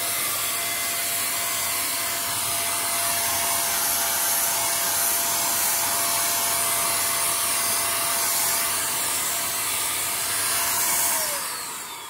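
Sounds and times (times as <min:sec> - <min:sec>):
paint spray gun motor whir: 0:00.0 - 0:12.0.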